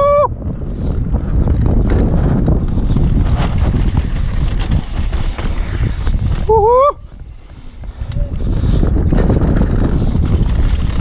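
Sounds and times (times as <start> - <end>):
bike tyres rumbling on dirt trail: 0.0 - 11.0
wind buffeting microphone: 0.0 - 11.0.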